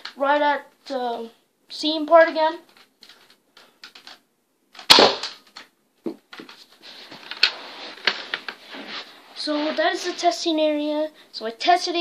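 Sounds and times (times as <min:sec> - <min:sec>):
toy blaster pop: 0:04.8 - 0:05.4
rustling handling noise: 0:05.5 - 0:10.4.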